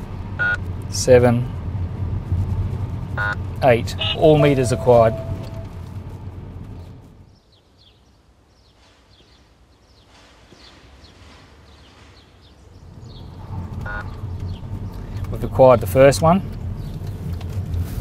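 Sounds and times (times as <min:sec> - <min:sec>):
car approaching: 0:12.8 - 0:18.0.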